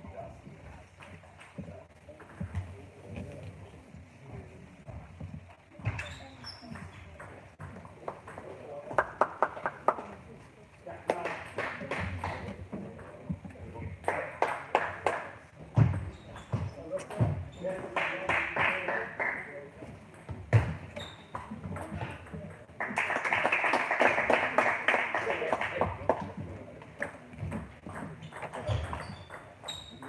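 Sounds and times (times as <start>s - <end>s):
voices in a large hall: 0.0s - 30.0s
ball hitting bat and table: 27.0s - 30.0s
table tennis ball bouncing: 27.0s - 30.0s.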